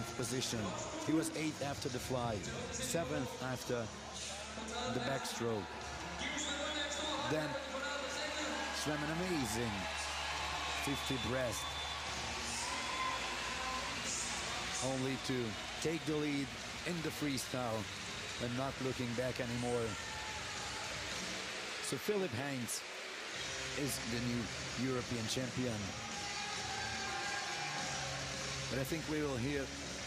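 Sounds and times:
man commentating: 0.0 - 10.1, 10.7 - 11.7, 14.5 - 20.0, 21.8 - 22.9, 23.8 - 26.5, 28.7 - 29.7
arena noise: 0.0 - 30.0.

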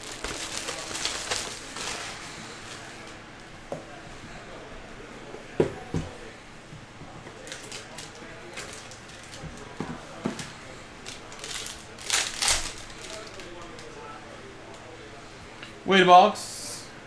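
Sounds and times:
plastic wrapper crinkling: 0.0 - 2.9, 7.4 - 9.8, 11.0 - 13.9.

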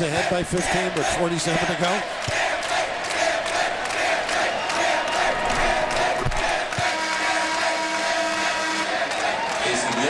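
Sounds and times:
arena crowd chanting: 0.0 - 10.0.

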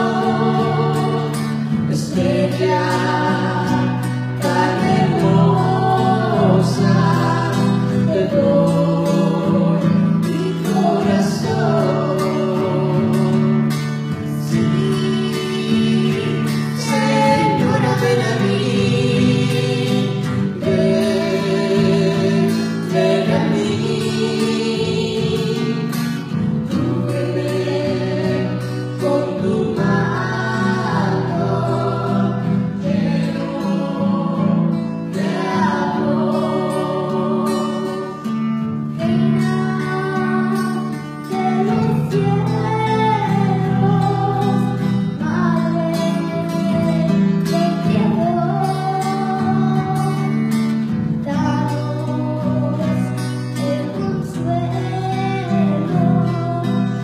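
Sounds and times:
girl singing a hymn: 0.0 - 13.4, 14.1 - 26.0, 26.6 - 38.3, 38.9 - 57.0
strummed guitar: 0.0 - 57.0.

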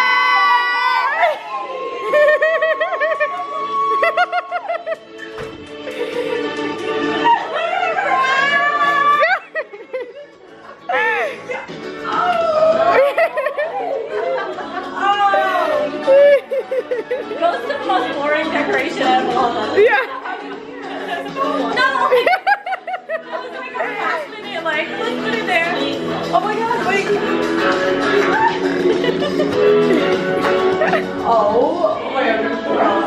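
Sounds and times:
women screaming with excitement: 0.0 - 5.0, 7.1 - 9.7, 10.9 - 17.0, 28.1 - 29.2
women squealing and chattering: 0.0 - 5.0, 7.0 - 33.0.

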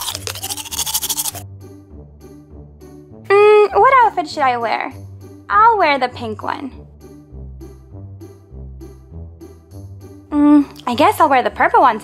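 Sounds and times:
toothbrush scrubbing: 0.0 - 1.4
background music: 0.0 - 12.0.

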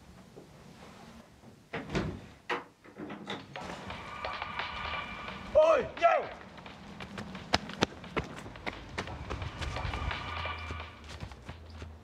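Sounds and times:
running footsteps on tarmac: 6.3 - 12.0.

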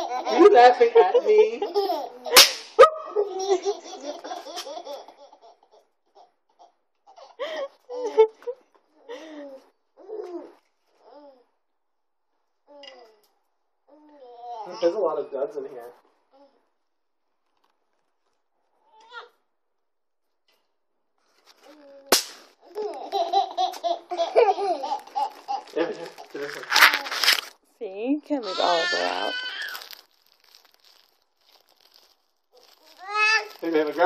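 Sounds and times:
baby laughing and cooing: 0.0 - 2.4, 3.2 - 9.6, 22.6 - 27.3
bang snap cracking on concrete: 2.3 - 2.8, 22.1 - 22.6.

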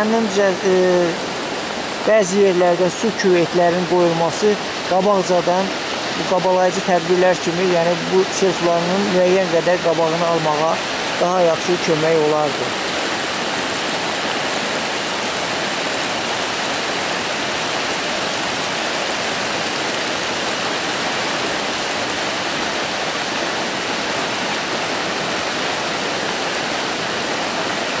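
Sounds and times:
river rushing in flood: 0.0 - 28.0.

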